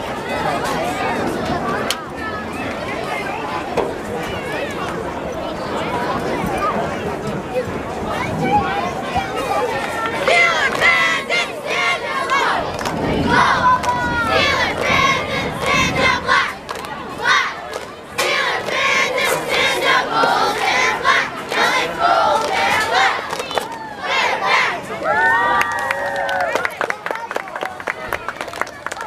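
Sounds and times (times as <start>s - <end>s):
cheerleaders shouting a cheer: 8.9s - 26.9s.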